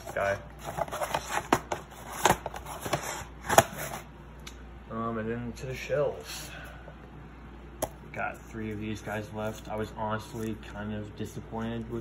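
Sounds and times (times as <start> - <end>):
cardboard box rustling and scraping: 0.0 - 4.1.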